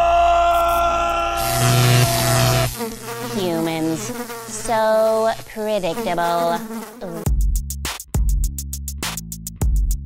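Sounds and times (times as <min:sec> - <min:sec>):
fly buzzing: 0:01.4 - 0:07.4.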